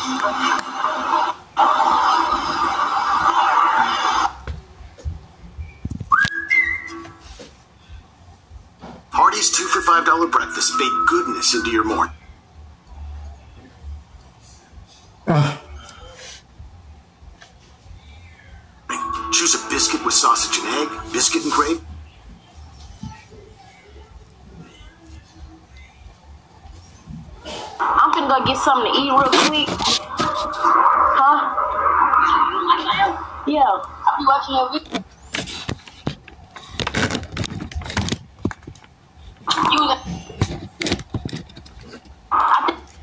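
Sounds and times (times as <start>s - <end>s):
rising whistle: 6.1s - 7.3s, 10.6s - 12.1s
voiceover speaking: 18.9s - 21.8s
background music: 18.9s - 22.1s.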